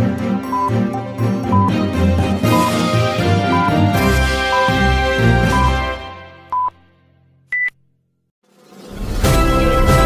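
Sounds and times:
electronic theme music: 0.0 - 6.5.

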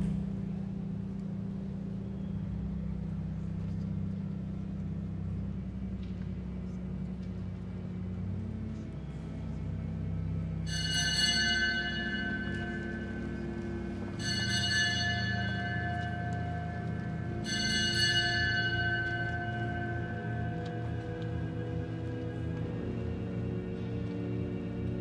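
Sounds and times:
pipe organ slow chords: 0.0 - 25.0
bright bell-like high chord: 10.7 - 21.2.

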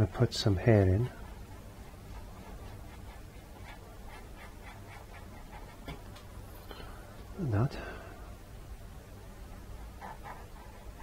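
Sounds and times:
low room hum: 0.0 - 11.0
paintbrush dabbing on canvas: 0.6 - 6.1.

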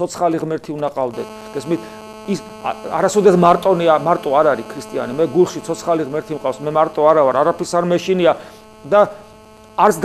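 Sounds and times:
man speaking: 0.0 - 9.2, 9.8 - 10.0
electrical hum: 0.0 - 10.0.

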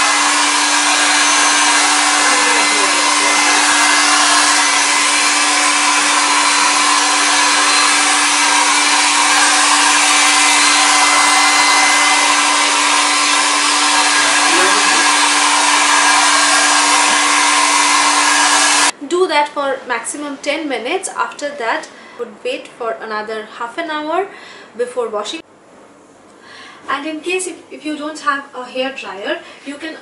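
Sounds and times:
hair dryer running: 0.0 - 19.0.

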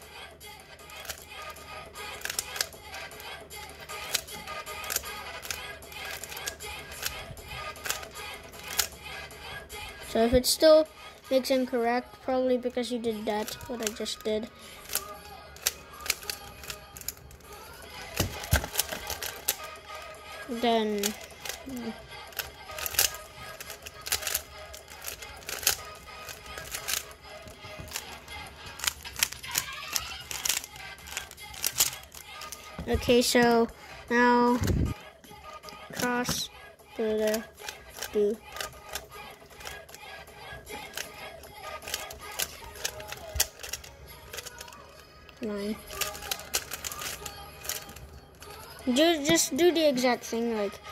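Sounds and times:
plastic puzzle cube clicking: 0.9 - 1.3, 2.1 - 2.8, 4.0 - 9.0, 13.4 - 17.4, 18.0 - 20.1, 20.9 - 32.6, 40.7 - 41.2, 41.8 - 44.8, 45.9 - 48.0
puzzle cube layers clicking: 2.2 - 2.7, 21.0 - 27.1.

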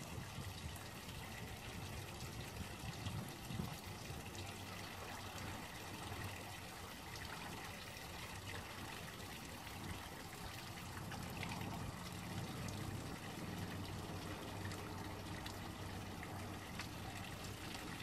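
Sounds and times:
water trickling: 0.0 - 18.0.

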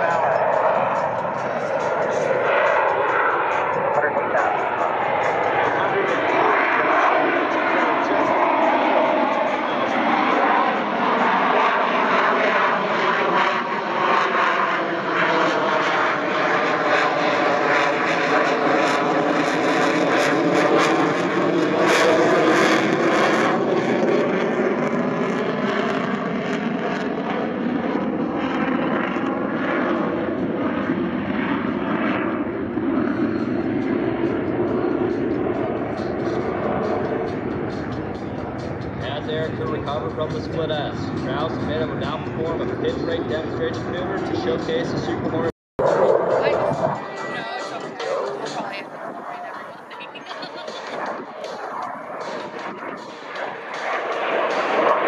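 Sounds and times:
jet engines passing overhead: 0.0 - 55.0.

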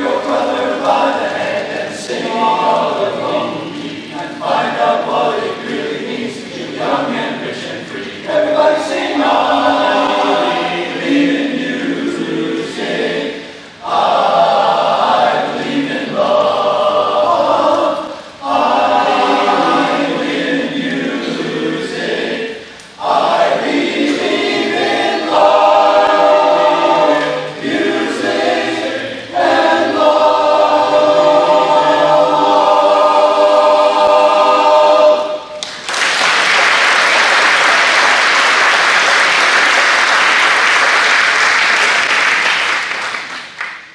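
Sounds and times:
men's chorus singing in harmony: 0.0 - 35.6
audience applause: 35.6 - 43.9.

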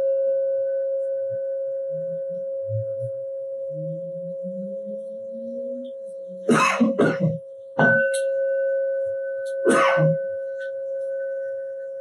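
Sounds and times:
singing bowl ringing: 0.0 - 6.5, 7.4 - 12.0.

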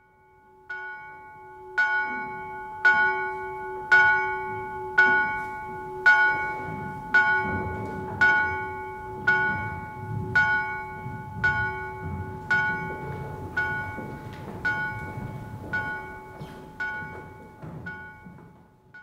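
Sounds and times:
bell tolling: 0.0 - 19.0.

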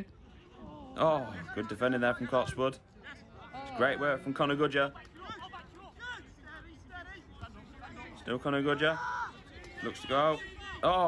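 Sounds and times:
distant footballers shouting: 0.0 - 11.0.

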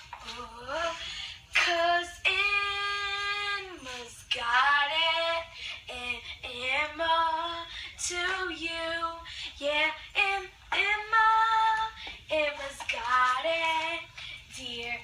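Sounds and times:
girl singing unaccompanied: 0.0 - 15.0.

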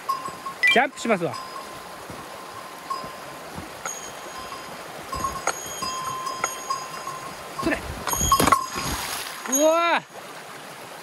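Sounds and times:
bell-like chiming: 0.0 - 1.8, 2.5 - 9.9
stream running over stones: 0.0 - 11.0
thuds and splashes: 7.9 - 9.5.

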